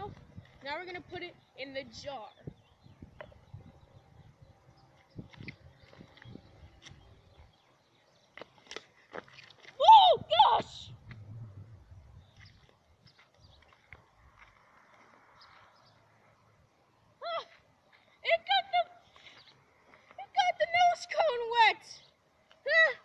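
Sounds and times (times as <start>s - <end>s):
footsteps in sandals: 12.3s - 15.8s.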